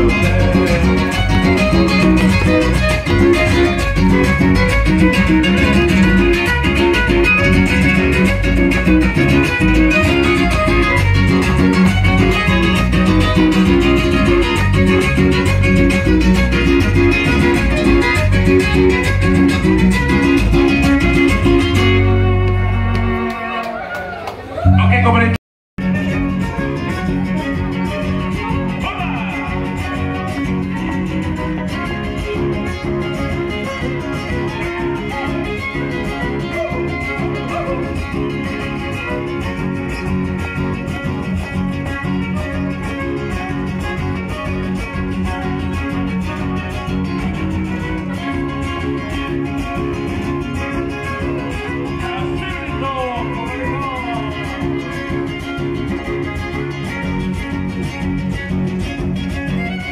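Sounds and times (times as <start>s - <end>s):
strummed and plucked guitars: 0.0s - 23.8s, 24.5s - 59.9s.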